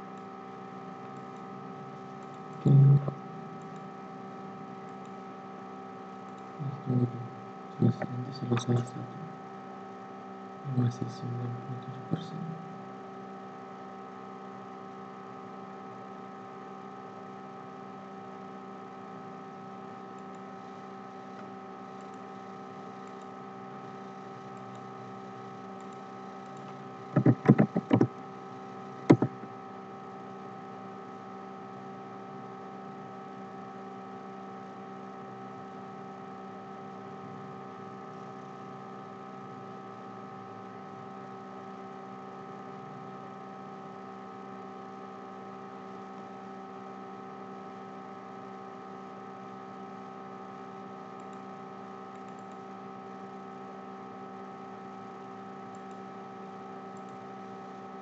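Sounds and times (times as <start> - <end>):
electrical hum: 0.0 - 58.0
sharp clicks: 25.8 - 28.1, 29.0 - 29.4.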